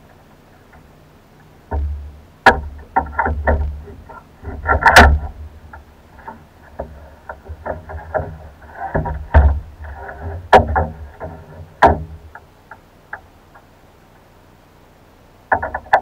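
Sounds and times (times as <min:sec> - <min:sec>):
oars knocking in oarlocks: 0:00.1 - 0:13.7, 0:15.4 - 0:16.0
water splashing against hull: 0:01.7 - 0:12.4.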